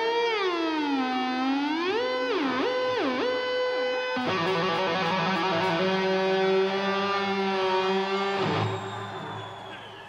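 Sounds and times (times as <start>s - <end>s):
electric guitar sliding sustained note: 0.5s - 9.4s.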